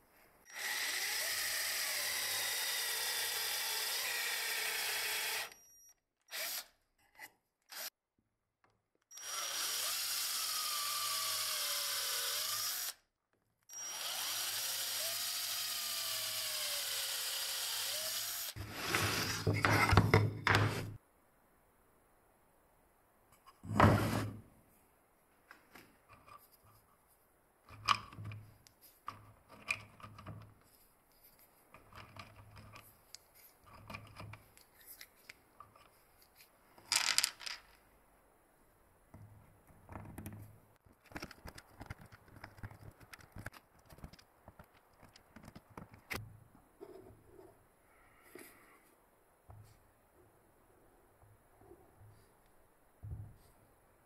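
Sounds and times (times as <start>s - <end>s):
electric drill boring into wood: 0.5s - 5.6s, 6.3s - 6.7s, 9.1s - 13.0s, 13.7s - 18.6s
wood scraping on workbench: 18.6s - 21.0s, 23.6s - 24.4s
wooden dowels clattering: 36.9s - 37.7s.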